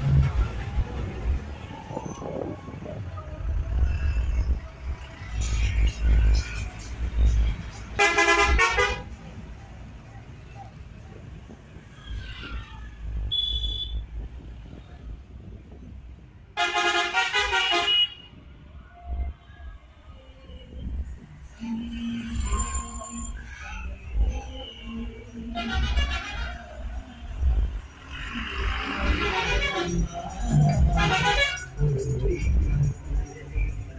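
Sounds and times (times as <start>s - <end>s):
bus engines rumbling: 0.0s - 33.9s
passing traffic: 0.0s - 33.9s
bus horn blasts: 8.0s - 9.1s, 13.3s - 14.0s, 16.6s - 18.3s, 25.5s - 26.7s, 29.1s - 30.1s, 31.0s - 31.8s.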